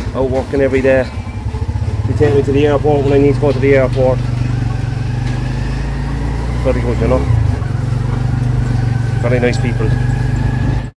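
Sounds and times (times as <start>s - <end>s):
small engine running: 1.0s - 10.9s.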